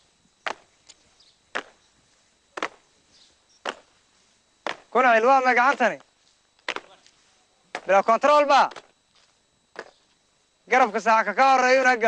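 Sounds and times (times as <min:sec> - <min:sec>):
boots stamping on ground: 0:00.4 - 0:04.0, 0:04.6 - 0:05.0, 0:05.6 - 0:10.2.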